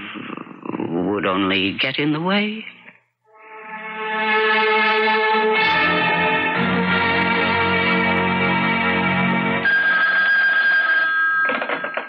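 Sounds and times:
music: 3.2 - 9.7
telephone bell ringing: 9.6 - 12.0.

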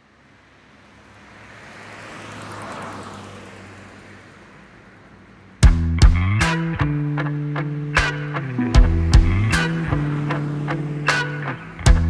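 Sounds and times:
car passing by: 0.0 - 5.6, 7.6 - 12.0.

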